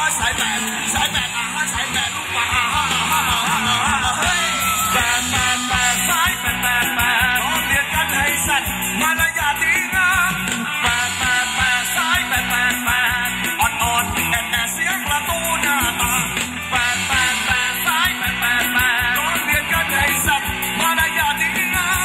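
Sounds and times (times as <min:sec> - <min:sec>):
female-pitched singing: 0:00.0 - 0:08.4
drums and bass beat: 0:00.0 - 0:22.0.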